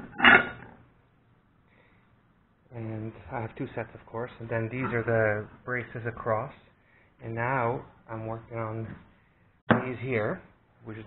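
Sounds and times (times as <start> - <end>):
metal plates clanking on workbench: 0.0 - 0.7.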